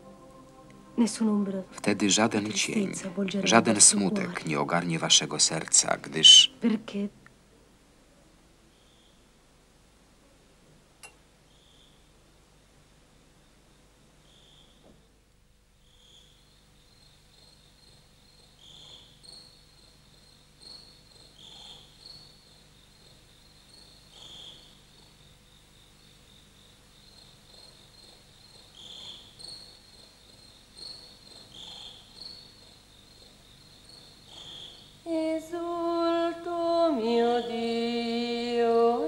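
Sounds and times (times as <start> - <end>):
high pulsing trill: 0.0 - 4.3
crickets chirping: 0.0 - 6.7, 8.7 - 9.4, 11.4 - 12.4, 13.2 - 15.1, 15.7 - 39.0.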